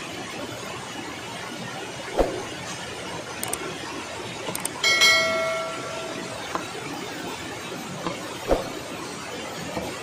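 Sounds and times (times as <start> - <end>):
quick clicks: 3.4 - 3.6, 4.5 - 4.8
bright bell chime: 4.8 - 6.5.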